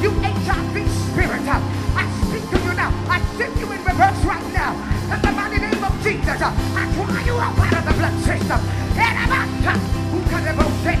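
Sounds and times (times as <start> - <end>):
live praise music: 0.0 - 11.0.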